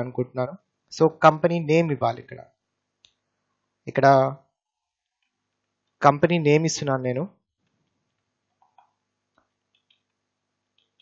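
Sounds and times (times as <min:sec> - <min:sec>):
person speaking: 0:00.0 - 0:02.4, 0:03.9 - 0:04.4, 0:06.0 - 0:07.3.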